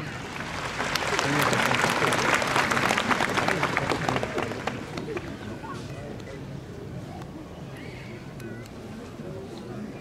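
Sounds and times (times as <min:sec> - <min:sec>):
audience applause: 0:00.0 - 0:05.3.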